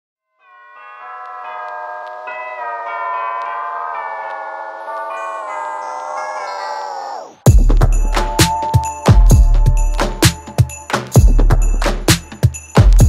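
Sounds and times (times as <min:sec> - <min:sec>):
background music held chords: 0:07.4 - 0:13.0.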